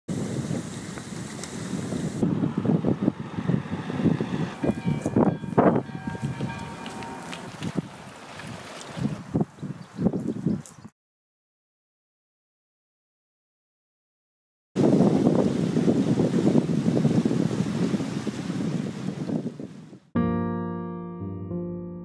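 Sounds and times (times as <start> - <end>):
wind buffeting microphone: 0.1 - 10.9, 14.8 - 20.1.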